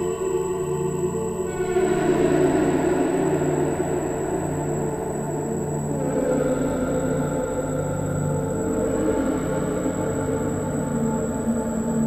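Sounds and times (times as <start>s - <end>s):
dense ambient drone: 0.0s - 12.0s.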